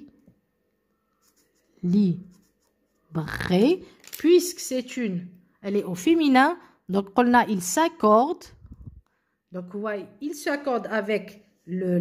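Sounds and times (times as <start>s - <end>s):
marker scratching on paper: 1.1s - 3.8s.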